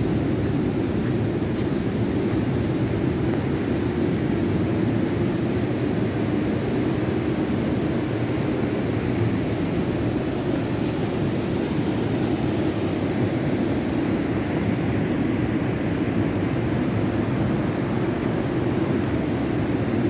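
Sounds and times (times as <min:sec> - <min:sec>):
ocean surf roaring: 0:00.0 - 0:20.0
wind: 0:00.0 - 0:20.0.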